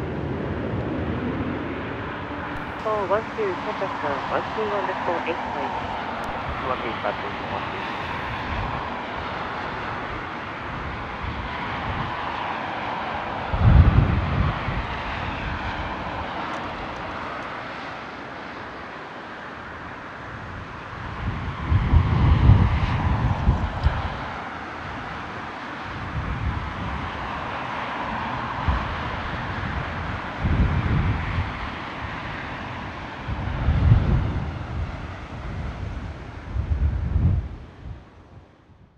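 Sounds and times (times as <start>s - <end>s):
wind buffeting microphone: 0.0s - 17.3s, 20.4s - 25.3s, 25.9s - 27.4s, 28.2s - 38.9s
jet engine whine and hiss: 0.0s - 36.7s.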